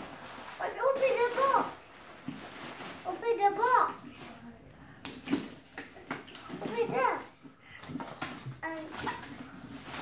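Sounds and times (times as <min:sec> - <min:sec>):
young child's high-pitched voice: 0:00.6 - 0:01.8, 0:03.0 - 0:04.1, 0:06.5 - 0:07.4, 0:08.4 - 0:09.4.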